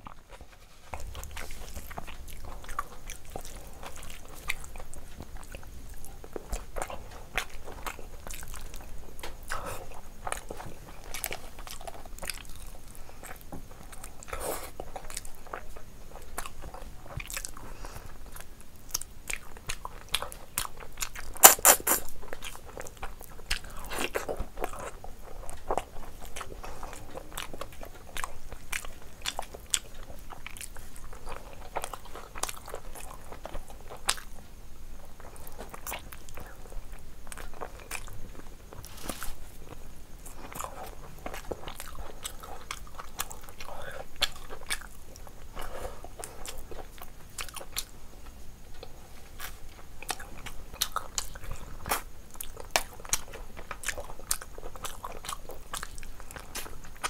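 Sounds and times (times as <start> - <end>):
wet chewing: 0.0 - 34.4, 35.0 - 57.0
sharp crunches: 21.4 - 22.1.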